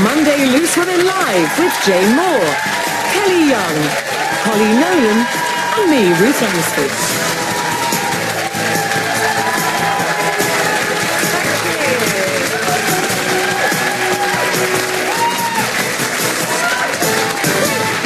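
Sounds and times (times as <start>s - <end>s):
audience applauding: 0.0s - 18.0s
loud music: 0.0s - 18.0s.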